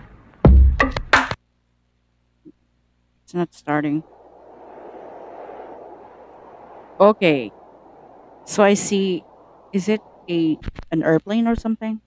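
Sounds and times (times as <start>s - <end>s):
soft rushing wind: 3.3s - 11.5s.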